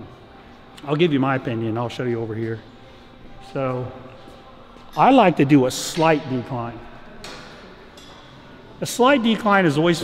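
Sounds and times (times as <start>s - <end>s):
gym background noise: 0.0s - 10.0s
man talking: 0.8s - 2.6s, 5.0s - 6.8s, 8.8s - 10.0s.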